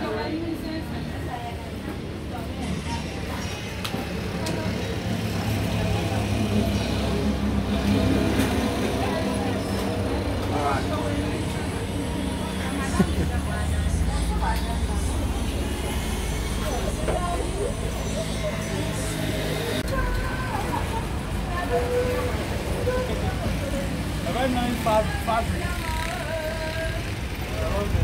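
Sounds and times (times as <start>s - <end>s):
faint background voices: 0.0s - 28.0s.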